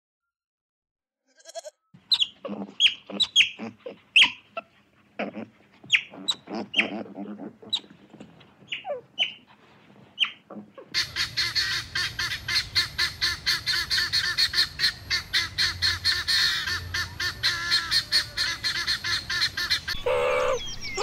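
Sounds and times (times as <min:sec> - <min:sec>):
longer lower bird calls: 0:02.0 - 0:04.7, 0:10.2 - 0:21.0
guineafowl harsh chatter: 0:02.0 - 0:09.5, 0:10.2 - 0:21.0.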